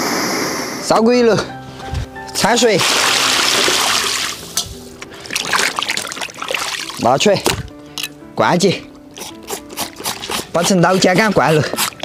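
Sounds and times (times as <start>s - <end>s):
water splashing onto pig skins: 2.4s - 7.8s, 9.6s - 12.0s.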